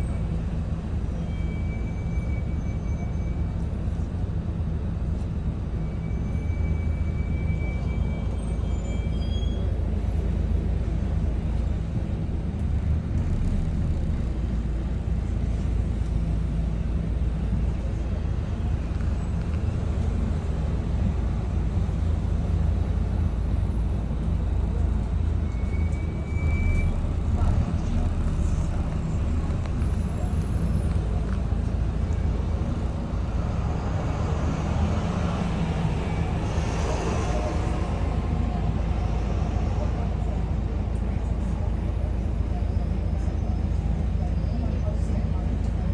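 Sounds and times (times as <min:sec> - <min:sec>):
bus diesel engine running: 0:00.0 - 0:45.9
road and traffic noise: 0:00.0 - 0:45.9.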